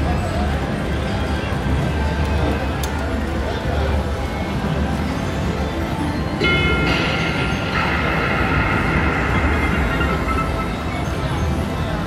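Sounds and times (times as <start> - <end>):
steady rumbling background: 3.1 - 12.0
slot machine electronic sounds: 4.5 - 12.0
synthetic tone chord: 6.4 - 12.0.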